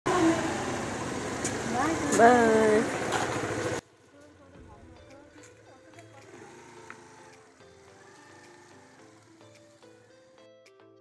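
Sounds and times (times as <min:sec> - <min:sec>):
motor scooter engine: 0:00.1 - 0:04.4, 0:05.1 - 0:10.3.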